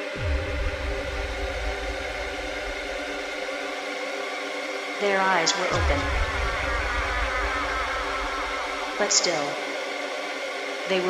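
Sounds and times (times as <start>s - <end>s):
deep sub-bass: 0.0s - 3.6s, 5.7s - 9.8s
buzzing synth drone: 0.0s - 4.0s, 4.9s - 11.0s.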